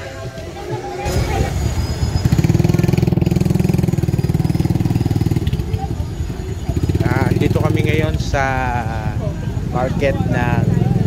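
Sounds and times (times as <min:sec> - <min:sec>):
motorcycle engine idling: 0:02.1 - 0:11.0.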